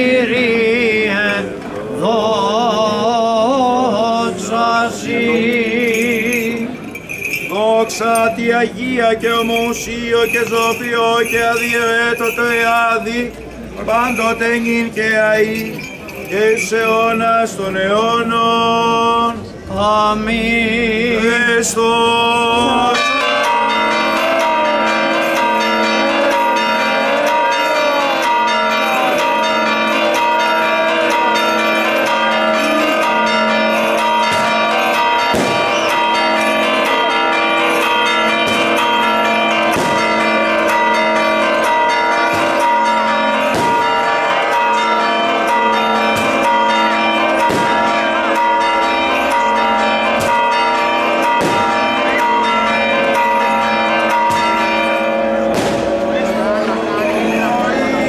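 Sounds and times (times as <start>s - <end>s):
church bells pealing: 2.5s - 19.3s, 20.4s - 58.0s
firecrackers banging: 22.6s - 54.8s, 55.4s - 57.2s.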